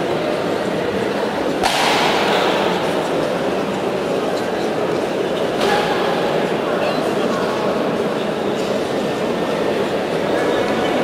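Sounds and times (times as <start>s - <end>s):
sports hall crowd noise: 0.0s - 11.0s.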